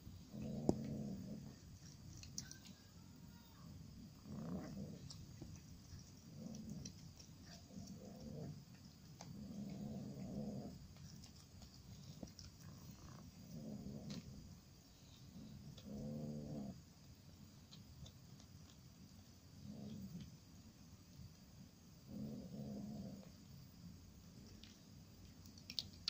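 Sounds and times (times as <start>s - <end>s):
cat growling: 0.0s - 16.8s, 19.6s - 20.3s, 22.1s - 23.4s.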